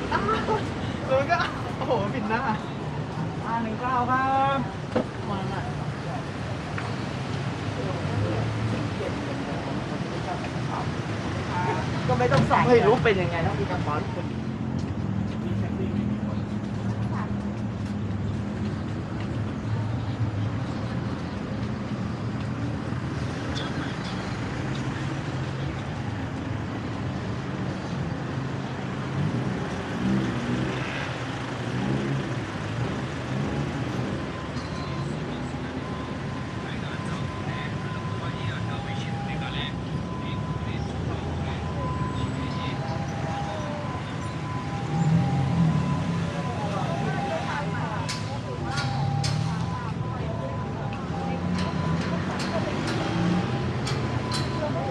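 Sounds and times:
traffic rumble: 0.0s - 54.9s
people talking: 35.6s - 44.0s, 46.2s - 53.4s, 54.1s - 54.9s.

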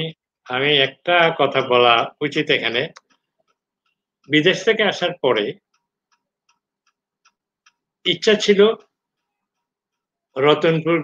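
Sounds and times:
man speaking: 0.0s - 3.0s, 4.3s - 5.6s, 8.1s - 8.9s, 10.4s - 11.0s
faint ticks: 5.6s - 7.9s.

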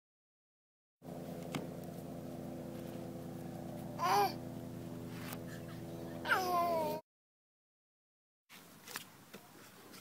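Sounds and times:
low mechanical hum: 1.0s - 7.0s.

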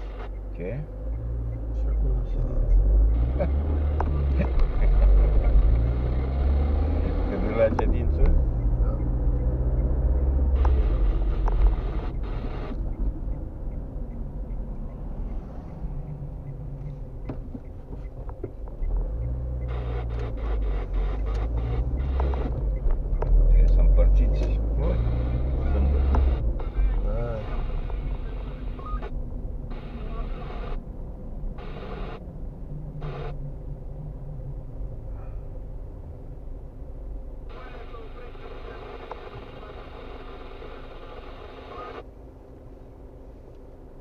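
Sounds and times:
car engine and road rumble: 0.0s - 44.0s.

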